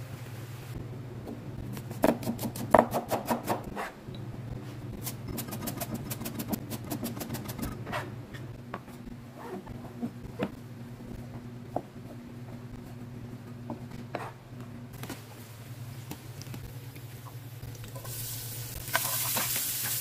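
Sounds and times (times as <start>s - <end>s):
steady low hum: 0.0s - 20.0s
cleaver chopping on cutting board: 2.0s - 3.7s.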